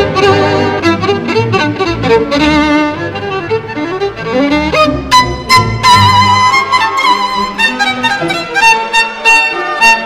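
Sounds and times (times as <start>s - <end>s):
orchestra accompaniment: 0.0s - 10.0s
solo violin playing fast: 0.0s - 10.0s.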